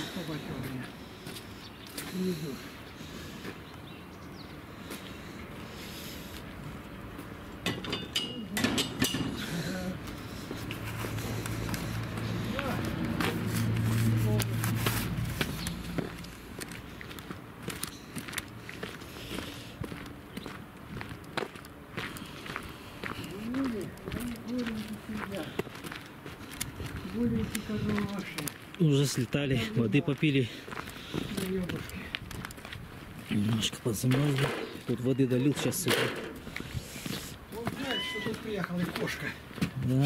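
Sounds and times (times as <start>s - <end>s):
footsteps crunching on frozen dirt: 0.0s - 7.6s, 9.4s - 40.0s.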